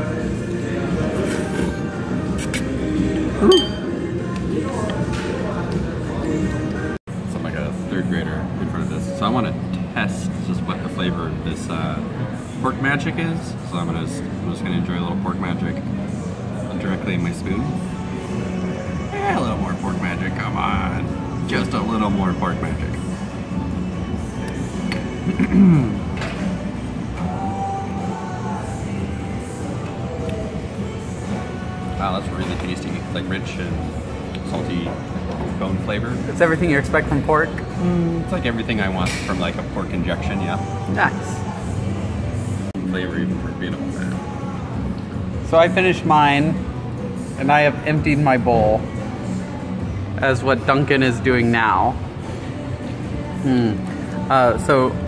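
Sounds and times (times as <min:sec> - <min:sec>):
background music: 0:00.0 - 0:55.0
steady room hum: 0:00.0 - 0:55.0
tableware clinking: 0:03.4 - 0:04.0.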